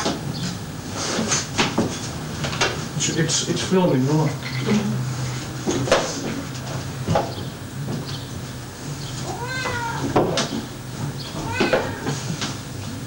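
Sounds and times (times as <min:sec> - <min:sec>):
cat meowing: 0:09.2 - 0:10.2, 0:11.3 - 0:12.3.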